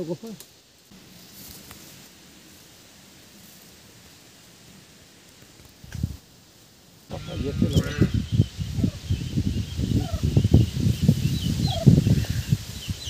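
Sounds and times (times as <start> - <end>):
leaves and branches rustling: 0.0 - 13.0.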